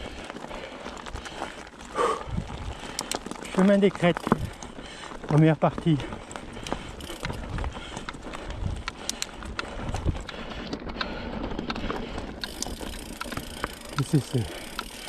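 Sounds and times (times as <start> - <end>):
bike rattling clicks: 0.0 - 15.0
tyres rolling on stones: 0.0 - 15.0.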